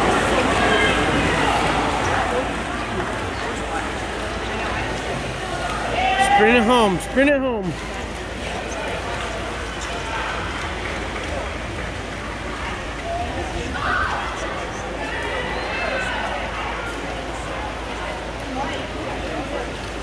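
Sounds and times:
spectators voices and shouts: 0.0s - 20.0s.

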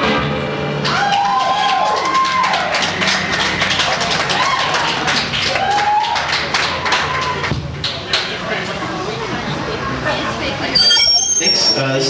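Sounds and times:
audience clapping and cheering: 0.7s - 8.9s
whoops: 0.8s - 2.9s, 4.2s - 7.5s.

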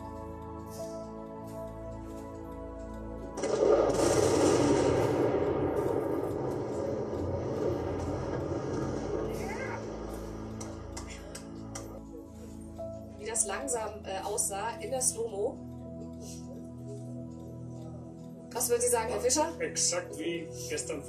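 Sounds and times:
explosive demolition blast: 3.4s - 10.9s
long rumbling collapse noise: 3.4s - 11.7s.

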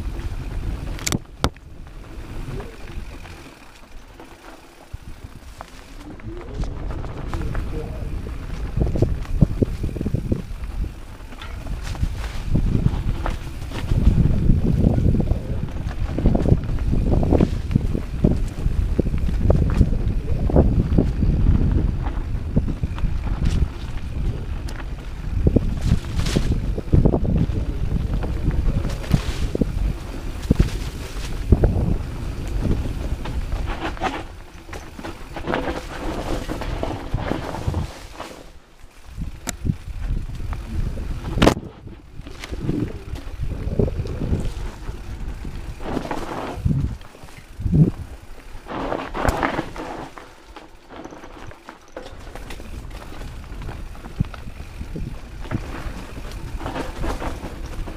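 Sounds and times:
wind buffeting microphone: 0.0s - 4.2s, 4.8s - 38.2s, 38.9s - 57.9s
bike rattling: 0.0s - 57.9s
tyres rumbling over dirt: 0.0s - 57.9s.

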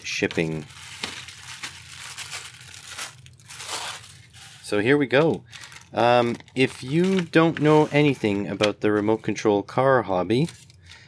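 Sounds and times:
plastic packaging crinkling: 0.0s - 9.0s.

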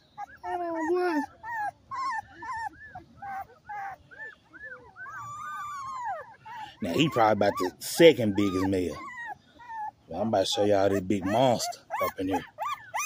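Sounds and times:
puppy whimpering: 0.0s - 13.0s.

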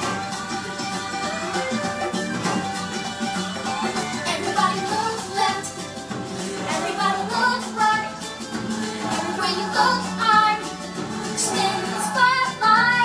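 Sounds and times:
backing music: 0.0s - 13.0s
woman singing: 4.2s - 5.8s, 6.5s - 13.0s.

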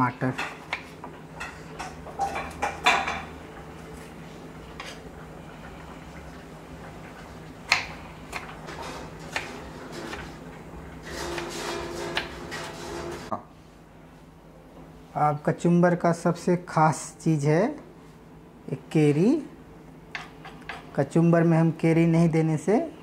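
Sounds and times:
knife chopping on wooden board: 9.3s - 10.3s.

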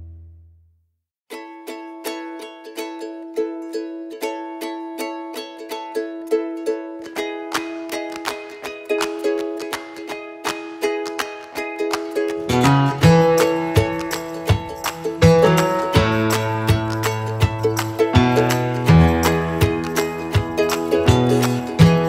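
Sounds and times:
plucked string instrumental: 1.3s - 22.0s.

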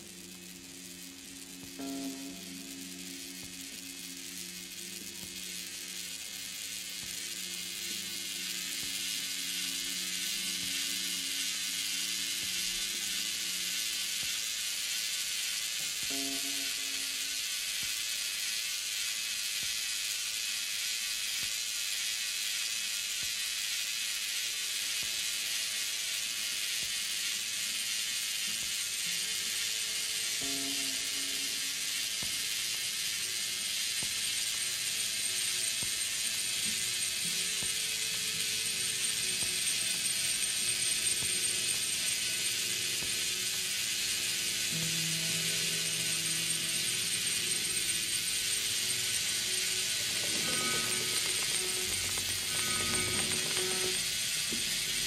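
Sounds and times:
hiss of high noise from records: 0.0s - 55.0s
low held tones: 44.6s - 54.9s.

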